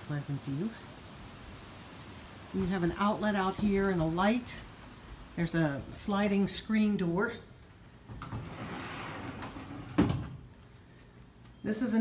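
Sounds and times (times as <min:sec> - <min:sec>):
sliding door rolling on track: 0:08.1 - 0:10.4.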